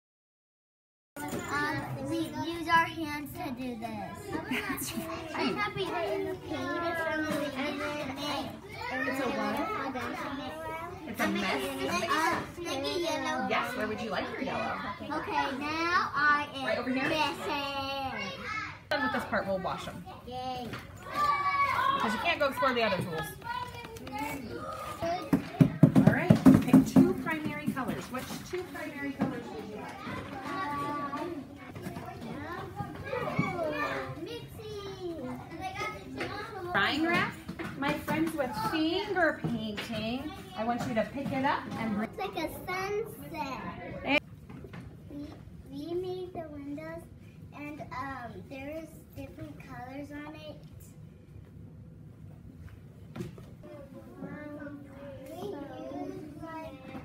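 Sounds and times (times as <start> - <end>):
young children chattering: 1.2 - 44.2, 53.6 - 57.0.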